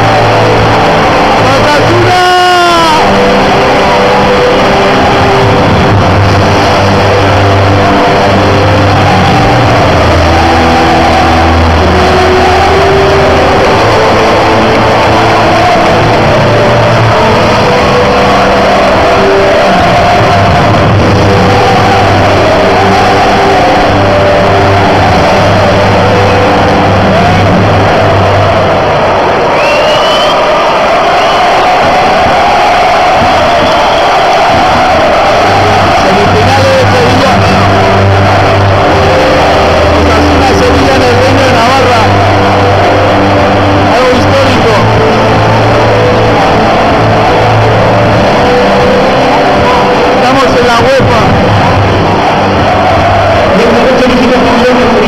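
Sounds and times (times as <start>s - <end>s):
music over loudspeakers: 0.0s - 55.0s
stadium crowd singing and cheering: 0.0s - 55.0s.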